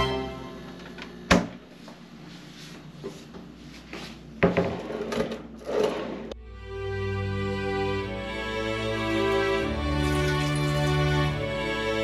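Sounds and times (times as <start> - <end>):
classical background music: 0.0 - 0.8, 6.4 - 12.0.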